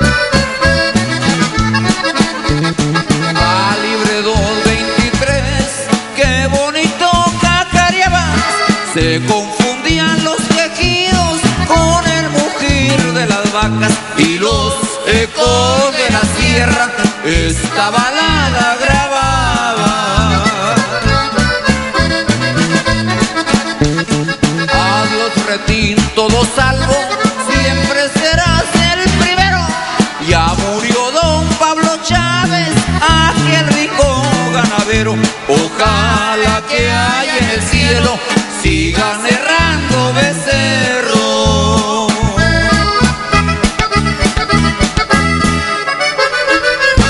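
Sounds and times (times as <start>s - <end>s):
button accordion melody: 0.0s - 47.0s
steady drum beat: 0.0s - 47.0s
stepping bass line: 0.0s - 47.0s.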